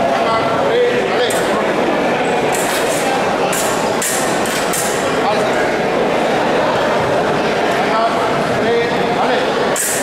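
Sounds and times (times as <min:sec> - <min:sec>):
crowd murmur: 0:00.0 - 0:10.0
fencing blades clinking: 0:02.5 - 0:05.2, 0:09.8 - 0:10.0.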